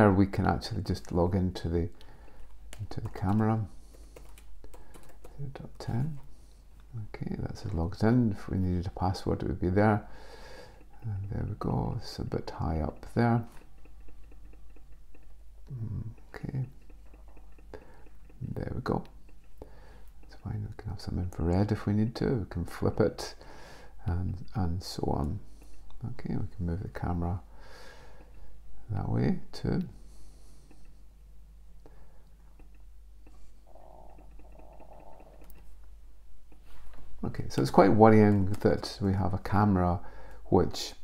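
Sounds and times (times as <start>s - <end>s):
low steady hum: 0.0s - 41.0s
faint clicks: 0.9s - 7.0s, 10.2s - 21.9s, 31.8s - 39.6s.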